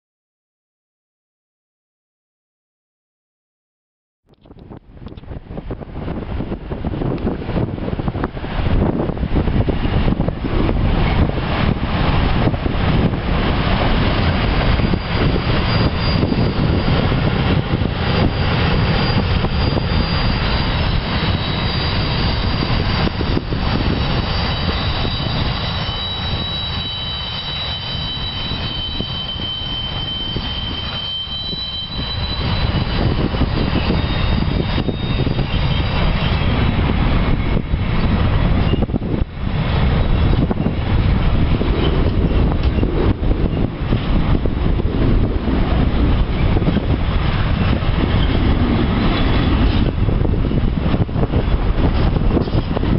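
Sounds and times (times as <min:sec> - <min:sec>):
train wheels rumbling: 0:04.5 - 0:52.9
high-pitched wheel squealing: 0:09.8 - 0:52.9.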